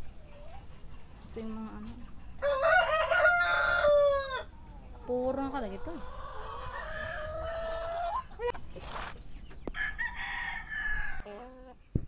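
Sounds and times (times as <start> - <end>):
roosters crowing: 2.3 - 11.3.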